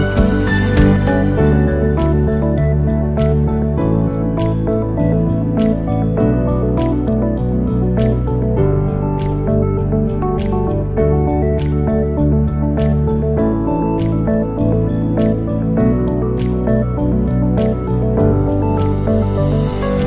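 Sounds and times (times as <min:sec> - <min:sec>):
light clicking beat: 0:00.0 - 0:20.0.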